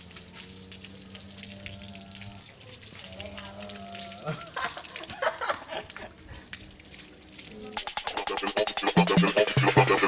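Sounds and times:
garden hose spraying water: 0.0 - 10.0
water splashing on hands: 2.0 - 8.3.

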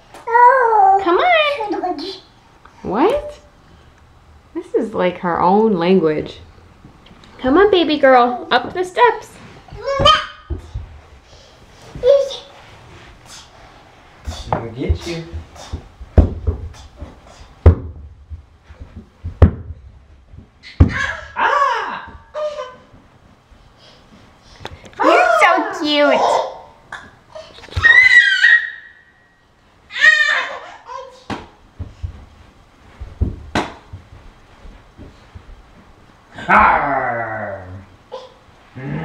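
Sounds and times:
dull thunks on stairs: 14.5 - 21.1, 33.0 - 34.4.

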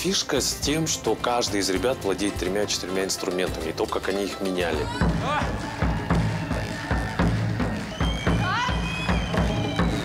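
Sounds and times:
folk instrument ensemble music: 0.0 - 7.1
steady drum beat: 4.7 - 10.0.

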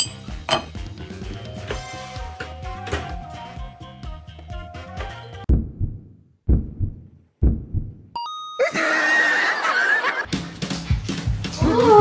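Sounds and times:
upbeat background music: 0.0 - 5.5, 10.2 - 12.0
low booming hits: 5.5 - 8.1
laugh-like sound effect: 8.6 - 10.3.

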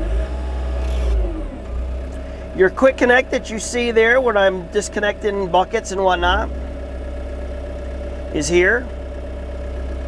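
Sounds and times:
diesel engine revving: 0.0 - 10.0.

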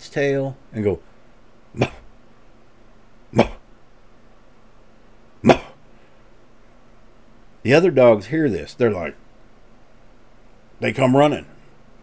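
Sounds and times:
man imitating muffled dog bark: 1.7 - 2.1, 3.3 - 3.7, 5.4 - 5.8.

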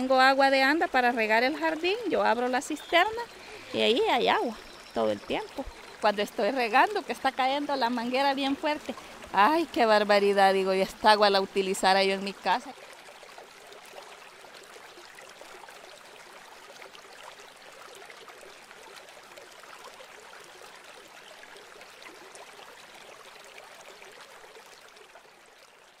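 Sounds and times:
running water: 0.0 - 26.0.

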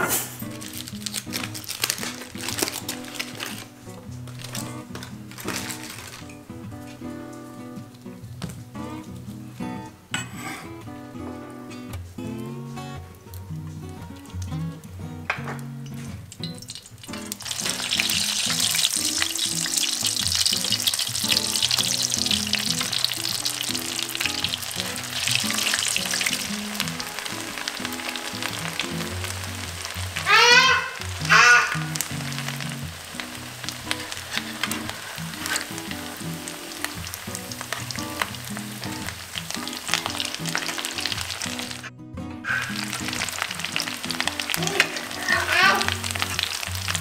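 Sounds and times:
background music: 0.0 - 47.0
aluminium foil crinkling: 0.2 - 7.5, 15.9 - 41.9, 42.5 - 47.0
potatoes sizzling in oil: 0.4 - 9.8, 15.3 - 41.9, 42.5 - 47.0.

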